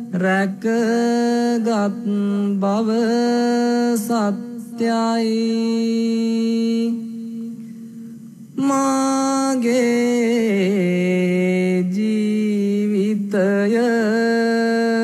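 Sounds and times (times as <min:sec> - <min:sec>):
person chanting: 0:00.0 - 0:07.8, 0:08.6 - 0:15.0.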